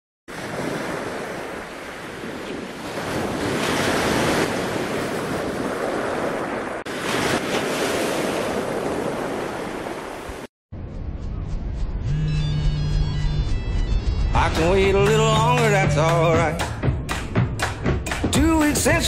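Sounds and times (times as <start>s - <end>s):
sea surf rushing: 0.3s - 10.5s.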